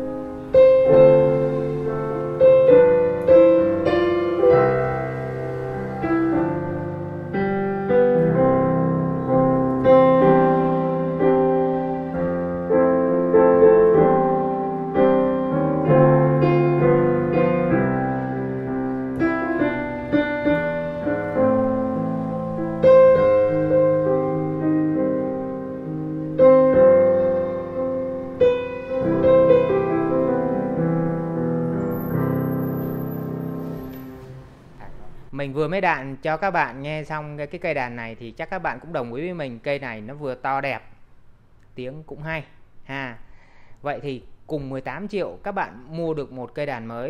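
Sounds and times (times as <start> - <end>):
piano playing chords and melody: 0.0 - 35.2.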